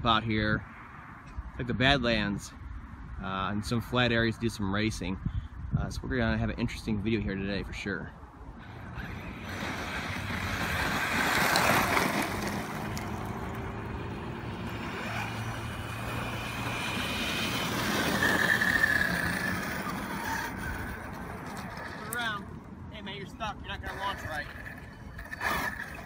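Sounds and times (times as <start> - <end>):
electric motor whine: 8.6 - 22.1
tyres scrabbling over gravel: 8.9 - 22.4.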